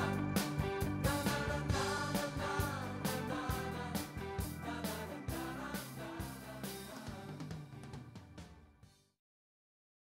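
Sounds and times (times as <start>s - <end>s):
band song ending: 0.0s - 8.8s.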